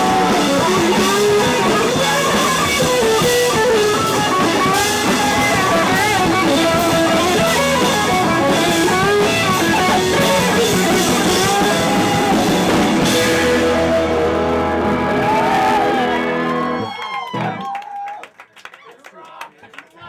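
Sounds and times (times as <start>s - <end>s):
drum kit: 0.0s - 16.8s
strummed electric guitar: 0.0s - 16.9s.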